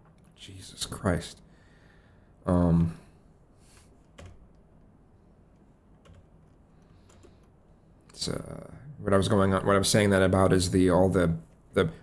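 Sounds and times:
computer keyboard clicks: 0:06.0 - 0:07.6.

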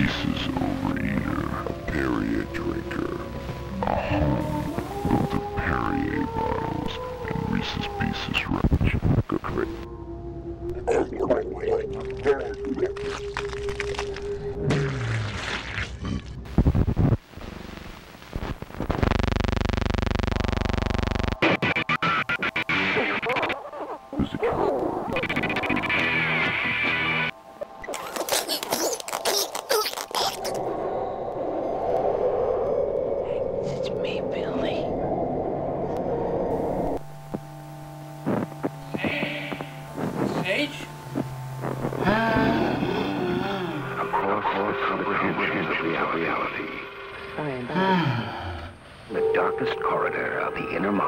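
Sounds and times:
man's wordless wavering vocals: 0:00.0 - 0:08.5, 0:10.7 - 0:13.4, 0:38.9 - 0:46.8
music: 0:00.0 - 0:08.6, 0:09.3 - 0:14.7, 0:21.0 - 0:29.7, 0:37.0 - 0:51.0
voices wailing and moaning: 0:00.0 - 0:15.1, 0:22.5 - 0:28.3, 0:38.2 - 0:51.0
low electrical hum: 0:24.0 - 0:51.0.

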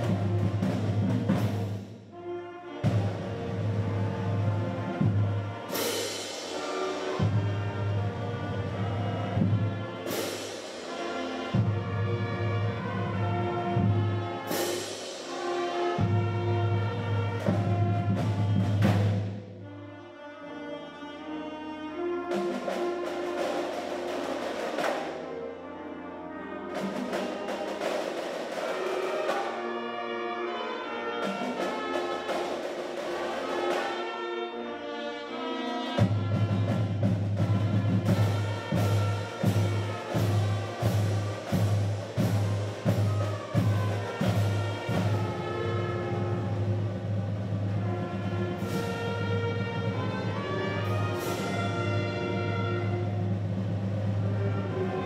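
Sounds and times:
steady drumbeats: 0:00.0 - 0:19.7, 0:22.0 - 0:25.7, 0:26.3 - 0:30.1, 0:30.9 - 0:34.6, 0:35.4 - 0:55.0
orchestral music with brass: 0:00.0 - 0:55.0.

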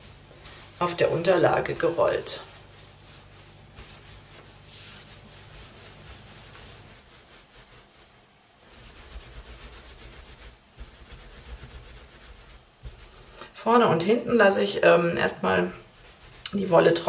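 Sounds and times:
hands rubbing wet wool on towel: 0:00.0 - 0:17.0.

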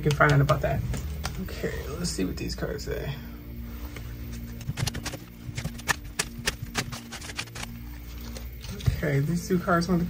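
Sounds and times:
cards being shuffled: 0:00.0 - 0:01.5, 0:03.9 - 0:08.8
low drone background music: 0:00.0 - 0:10.0.

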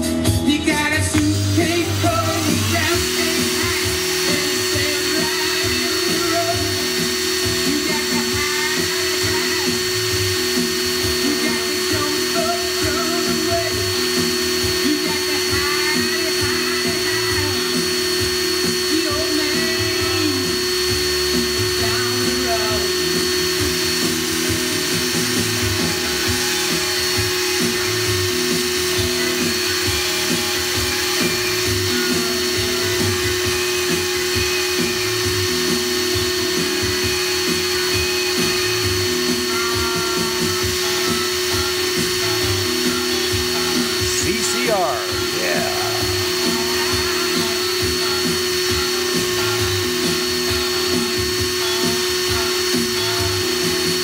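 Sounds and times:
cordless drill whining: 0:00.0 - 0:54.0.

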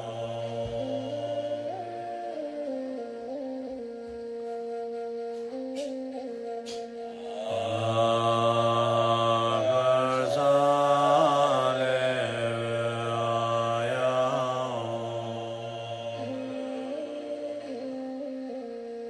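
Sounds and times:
man chanting: 0:00.0 - 0:03.0, 0:07.1 - 0:18.5.

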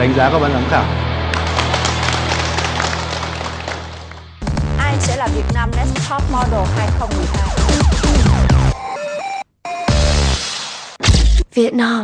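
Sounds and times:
background music with low bass: 0:00.0 - 0:08.9
people clapping: 0:01.3 - 0:04.4.

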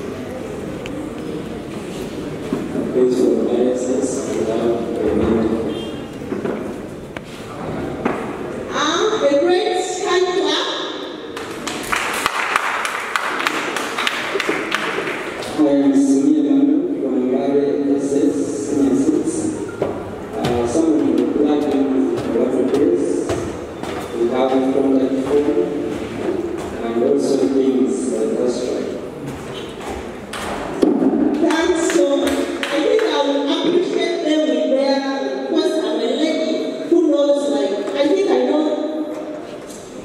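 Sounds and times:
voices in a large hall: 0:00.0 - 0:40.0
audience clapping: 0:11.4 - 0:15.5, 0:31.4 - 0:33.2.

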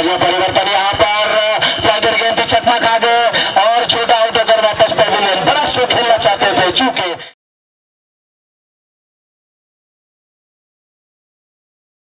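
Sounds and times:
person talking loudly: 0:00.0 - 0:07.4.

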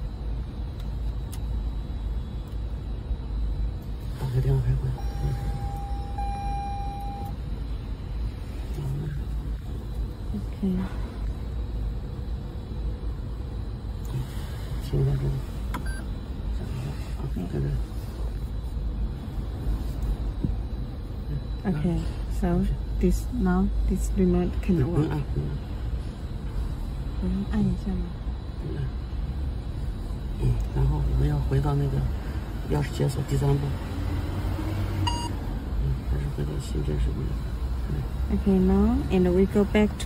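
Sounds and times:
low rumble inside car cabin: 0:00.0 - 0:40.0
low steady hum: 0:00.0 - 0:40.0
short electronic beep: 0:04.9 - 0:07.4, 0:35.0 - 0:35.3.

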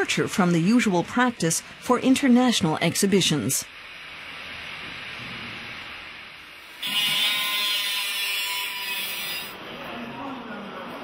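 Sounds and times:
power tool whining: 0:06.8 - 0:09.5.

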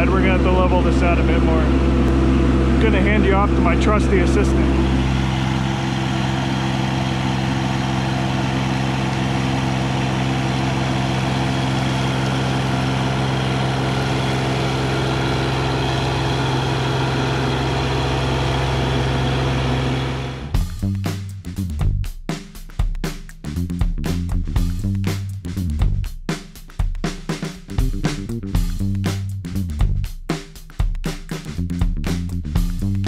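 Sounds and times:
guitar music: 0:00.0 - 0:20.6
tractor diesel engine running: 0:00.0 - 0:20.8.

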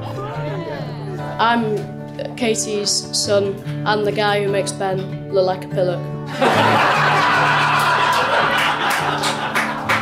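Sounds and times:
crowd laughing: 0:00.0 - 0:01.2, 0:06.3 - 0:10.0
soft background music: 0:00.0 - 0:07.7.

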